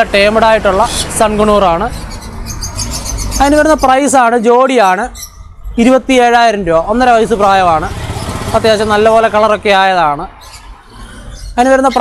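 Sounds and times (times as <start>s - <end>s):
person talking: 5.8s - 10.3s.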